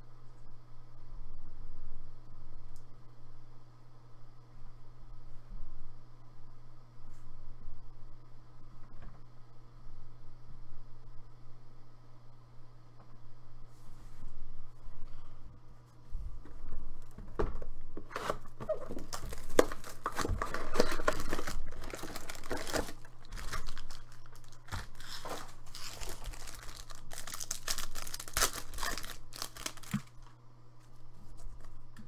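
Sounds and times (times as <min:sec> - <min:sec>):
foil card packs crinkling: 0:18.0 - 0:30.4.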